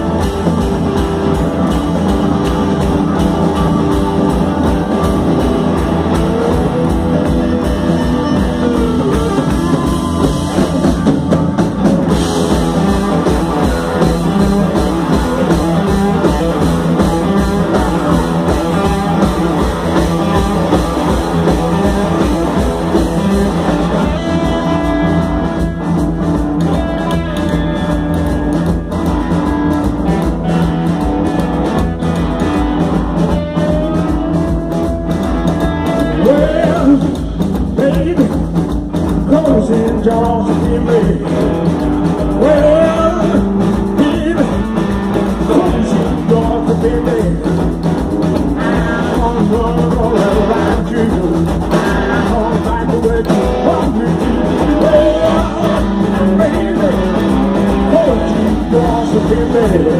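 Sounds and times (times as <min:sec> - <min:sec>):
soul-rock band playing: 0:00.0 - 0:59.9.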